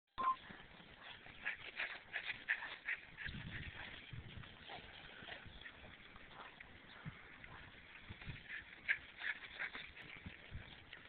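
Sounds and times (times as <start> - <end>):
short beep: 0.2 - 0.4.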